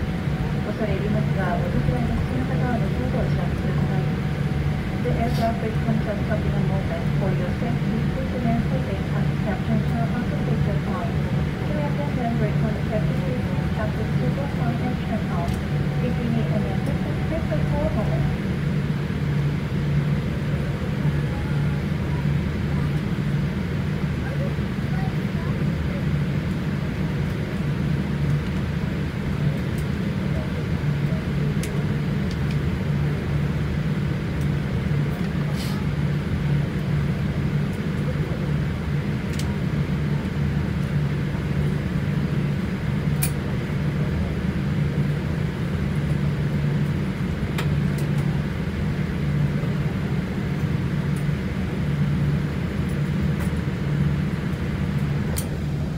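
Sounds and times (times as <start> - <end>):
jet engines idling drone: 0.0 - 55.9.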